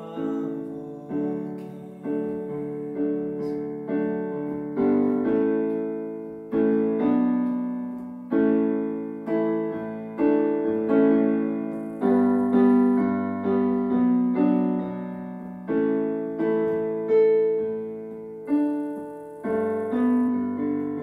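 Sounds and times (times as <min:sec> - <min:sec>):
digital piano playing slow chords: 0:00.0 - 0:21.0.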